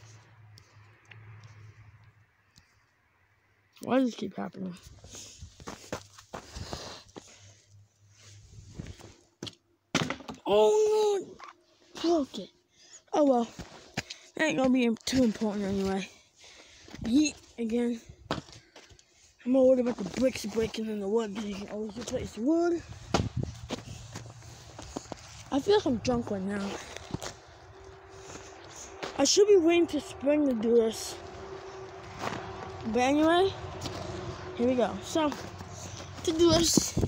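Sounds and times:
footsteps crunching through snow: 5.3 - 7.3, 19.8 - 30.0, 32.0 - 36.7.

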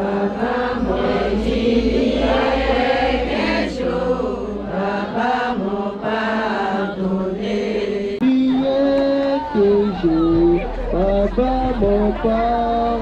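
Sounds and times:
women singing a chant: 0.0 - 13.0.

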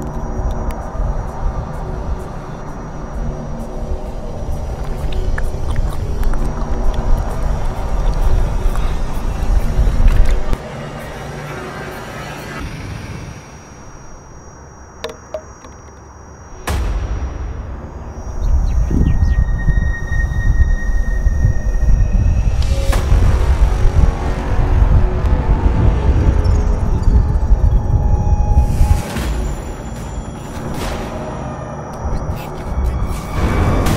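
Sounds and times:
music with heavy bass: 22.5 - 27.6.

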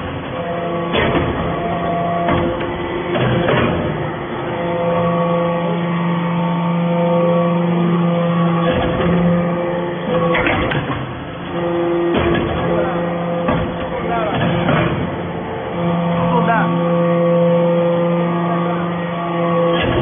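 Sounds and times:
hydraulic machine hum: 0.0 - 20.0
press clunking: 0.2 - 4.2, 10.1 - 15.8.

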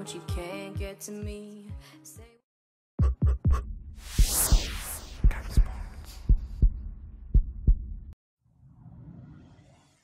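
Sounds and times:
deep bass thumps: 5.2 - 8.2.

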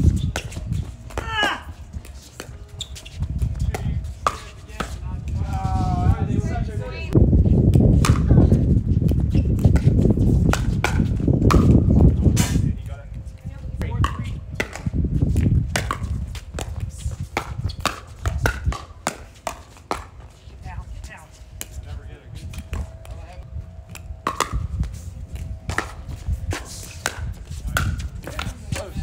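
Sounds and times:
paddles striking pickleball: 0.1 - 5.5, 8.0 - 8.4, 9.1 - 12.6, 13.8 - 20.4, 23.8 - 29.0
low rumble: 20.6 - 29.0.

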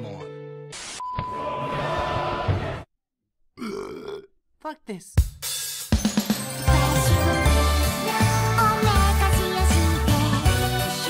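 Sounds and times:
grunt-like voice: 3.6 - 4.3.

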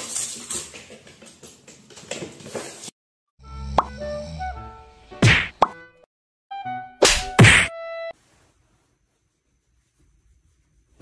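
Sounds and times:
cartoon whack sound effects: 5.2 - 5.8, 7.0 - 7.7.

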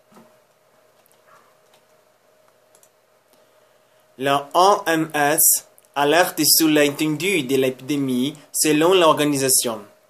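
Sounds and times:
faint steady hum: 0.0 - 10.0
faint clicks: 0.2 - 3.5.

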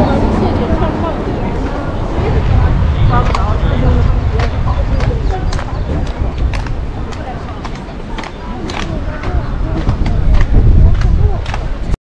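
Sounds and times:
passers-by talking: 0.0 - 12.0
wind rumble on microphone: 0.0 - 12.0
footsteps on wooden boardwalk: 4.4 - 11.8.

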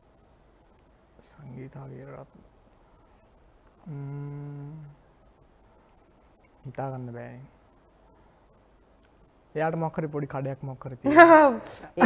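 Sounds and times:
person humming: 3.9 - 5.0.

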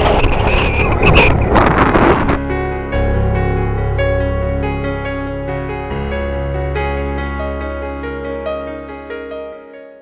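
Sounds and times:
wind buffeting microphone: 0.0 - 2.5.

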